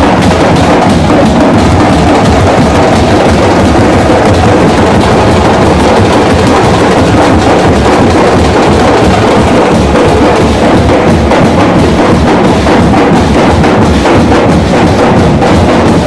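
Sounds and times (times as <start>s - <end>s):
steel drums beaten with sticks: 0.0s - 16.0s.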